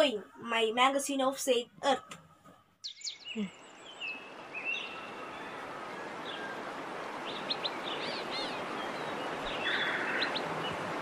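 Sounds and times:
birds chirping: 0.0s - 11.0s
steady background hiss: 2.9s - 11.0s.

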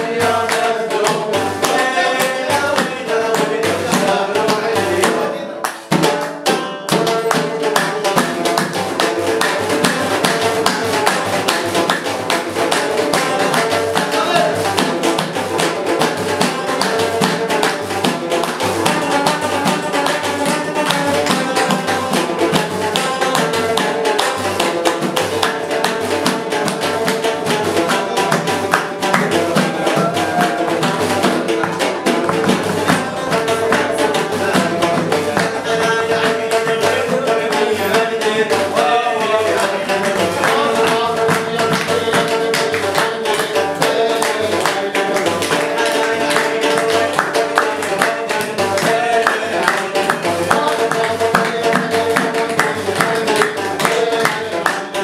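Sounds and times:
banjo playing: 0.0s - 55.0s
frame drum with jingles: 0.0s - 55.0s.

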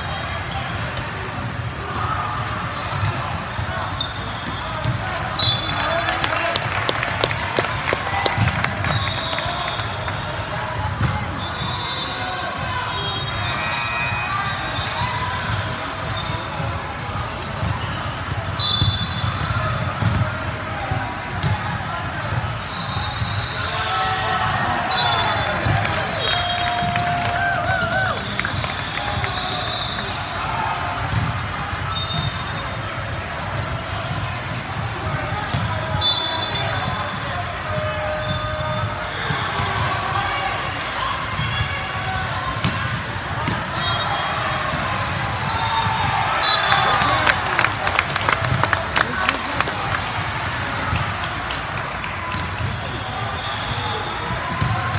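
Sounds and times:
many voices: 0.0s - 54.9s
crowd clapping and cheering: 5.5s - 10.6s, 23.9s - 30.5s, 45.6s - 52.8s.

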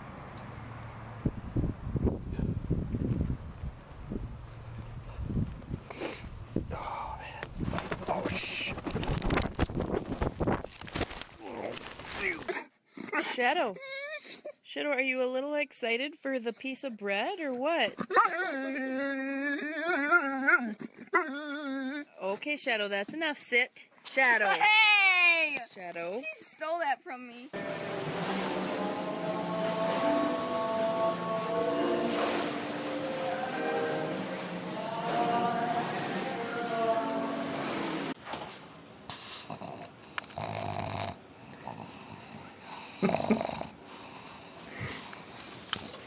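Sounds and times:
dog whining: 13.0s - 14.7s, 18.0s - 22.2s.

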